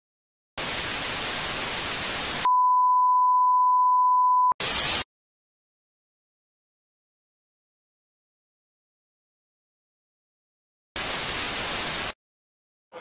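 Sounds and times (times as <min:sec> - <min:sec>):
tv static hiss: 0:00.6 - 0:02.5, 0:11.0 - 0:12.2
high test-tone beep: 0:02.5 - 0:04.6.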